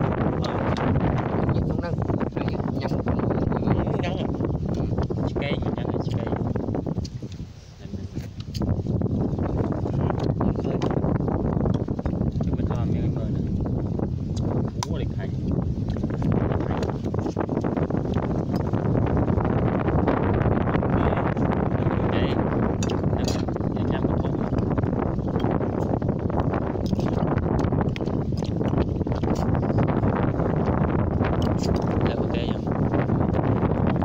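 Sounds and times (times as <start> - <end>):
wind rumbling on microphone: 0.0 - 34.0.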